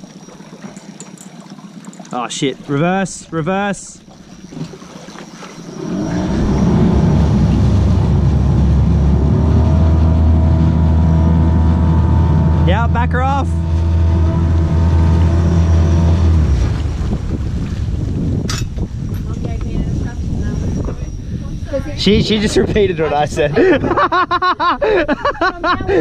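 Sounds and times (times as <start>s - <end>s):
boat motor droning: 0.0s - 25.0s
propeller churning water: 0.0s - 26.0s.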